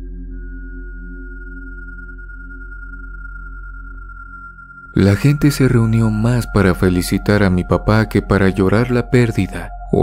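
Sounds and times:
dark ambient synth drone: 0.0s - 10.0s.

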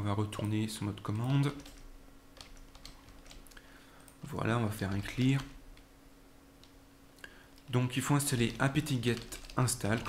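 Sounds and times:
faint steady hum: 0.0s - 10.0s
computer keyboard keystrokes: 1.2s - 4.2s, 8.4s - 10.0s.

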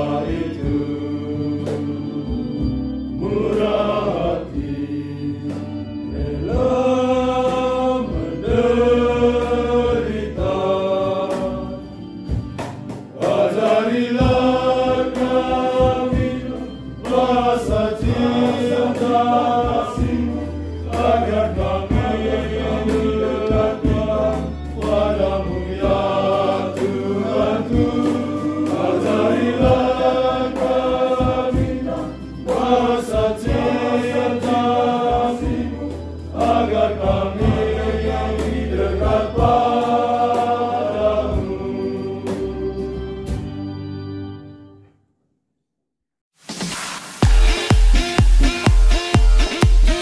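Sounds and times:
male choir singing a hymn: 0.0s - 12.4s, 13.1s - 43.5s.

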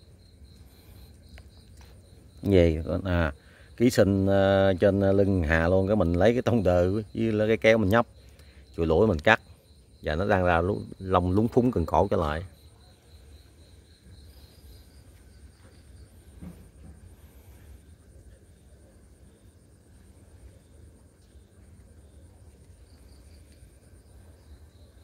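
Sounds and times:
insects chirping: 0.0s - 25.0s.

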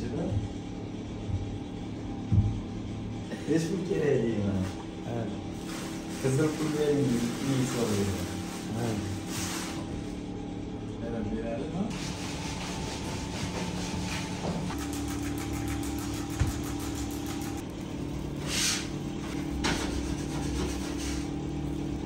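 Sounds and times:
motor humming: 11.6s - 22.0s.

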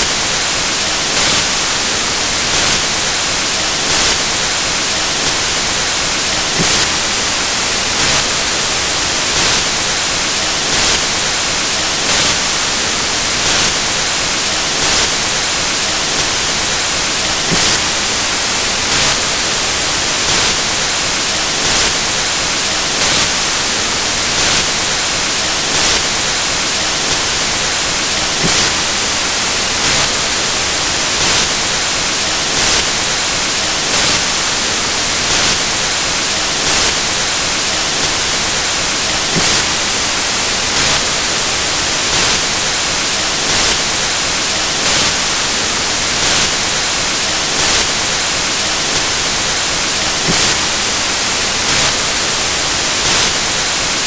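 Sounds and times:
static hiss: 0.0s - 54.0s.

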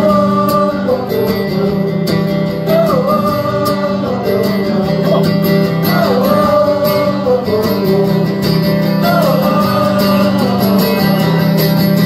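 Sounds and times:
acoustic guitar strumming: 0.0s - 12.0s
man singing: 0.0s - 12.0s.

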